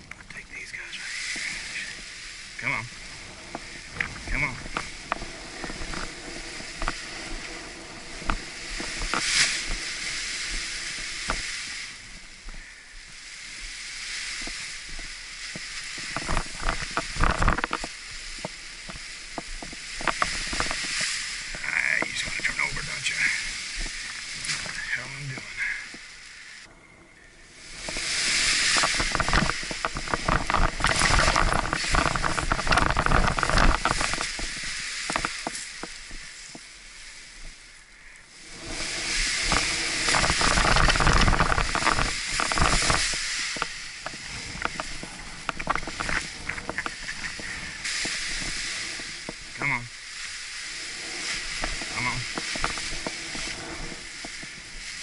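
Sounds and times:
wind rushing over microphone: 0.0s - 55.0s
nylon canopy rustling and snapping: 3.5s - 12.3s, 13.9s - 25.5s, 27.7s - 36.6s, 38.6s - 55.0s.

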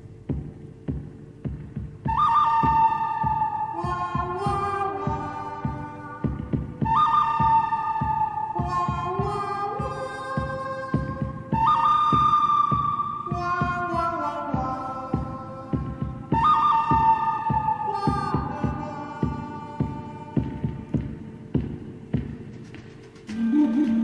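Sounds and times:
gliding lead melody over beat: 0.0s - 24.0s.

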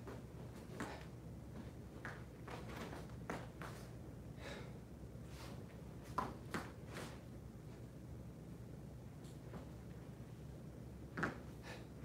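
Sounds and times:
soft swishes and scuffs: 0.0s - 4.0s, 5.2s - 8.0s, 9.1s - 10.5s
low room hum: 0.0s - 12.0s.

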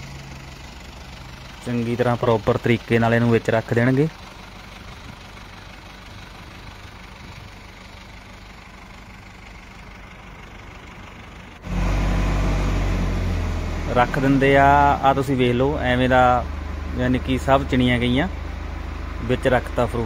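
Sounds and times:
tractor diesel engine idling: 0.0s - 20.0s.

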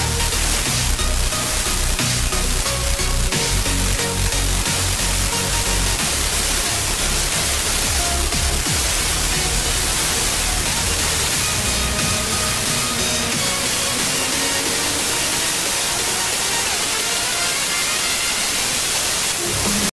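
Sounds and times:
faint radio music: 0.0s - 19.9s
static hiss: 0.0s - 19.9s.

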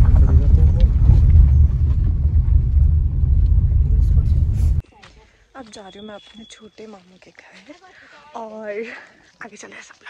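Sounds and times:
car cabin rumble: 0.0s - 4.8s.

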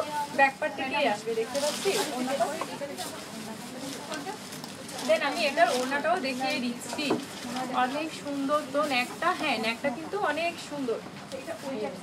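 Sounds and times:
fabric rustling: 0.0s - 9.7s
voices in shop: 0.0s - 12.0s.

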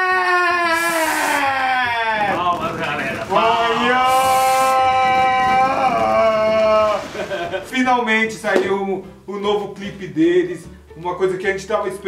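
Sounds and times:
man yelling excitedly: 0.0s - 7.0s
brief hiss: 0.7s - 1.5s, 4.1s - 4.8s.

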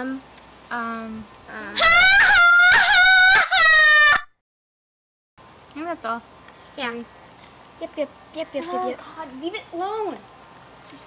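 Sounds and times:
high-pitched shrieking laugh: 1.8s - 4.3s.

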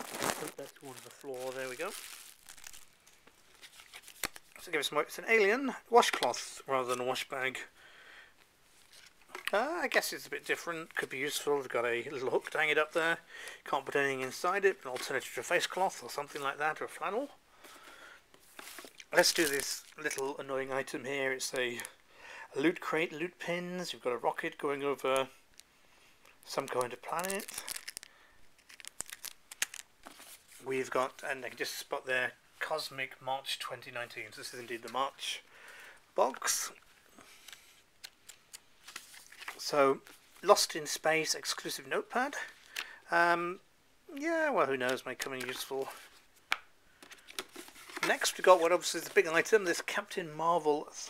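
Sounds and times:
plastic packaging crinkling: 0.0s - 4.7s, 18.4s - 20.4s, 26.3s - 31.2s, 37.4s - 40.4s.

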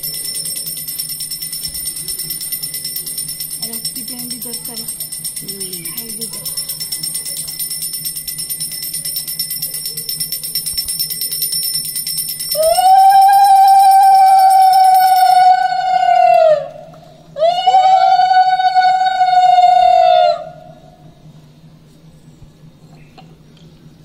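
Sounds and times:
hand bell ringing rapidly: 0.0s - 15.4s.

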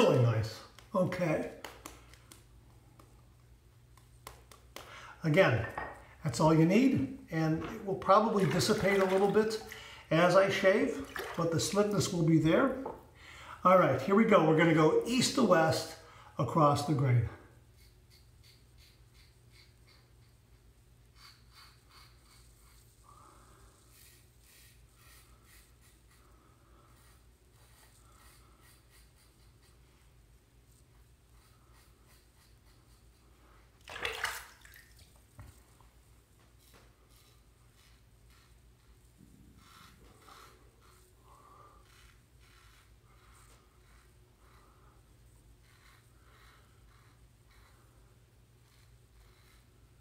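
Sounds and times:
razor scraping stubble: 23.8s - 30.2s.

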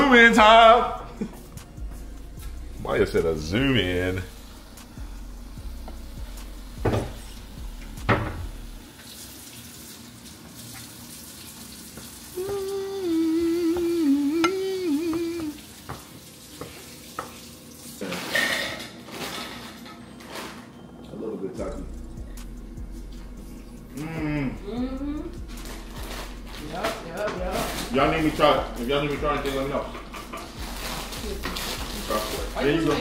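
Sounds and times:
wavering pitched tone: 12.4s - 15.5s.

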